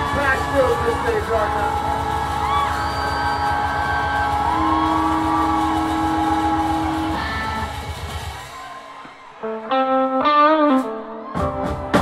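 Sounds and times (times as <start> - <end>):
low rumble of rhythm section: 0.0 - 8.7
electric guitar bending notes: 9.4 - 12.0.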